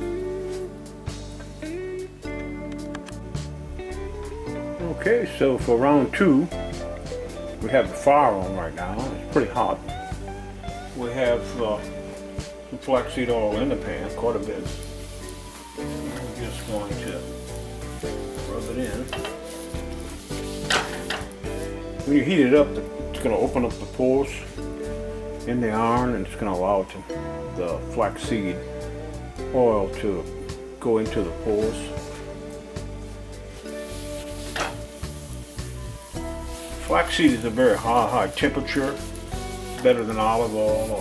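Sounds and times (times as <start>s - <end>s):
background music: 0.0s - 41.0s
oil sizzling in a skillet: 3.3s - 41.0s
cloth wiping a pan: 13.1s - 22.6s, 33.4s - 41.0s.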